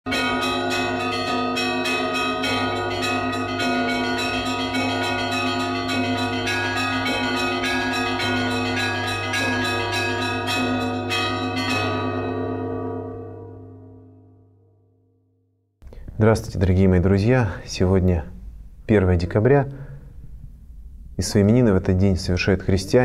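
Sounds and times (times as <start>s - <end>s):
small church bells pealing: 0.1s - 14.6s
deep bell humming: 0.1s - 15.4s.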